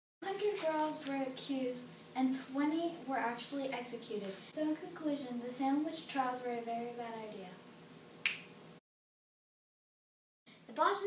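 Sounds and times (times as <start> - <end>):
finger snap: 8.2 - 8.6.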